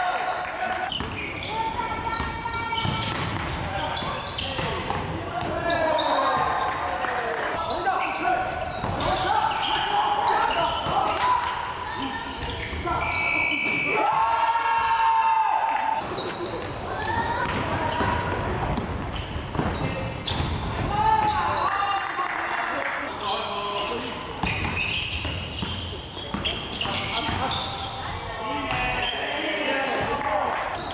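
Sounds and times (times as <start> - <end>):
ball bouncing on wooden court: 0.9 - 5.7, 17.3 - 21.4, 24.4 - 27.5.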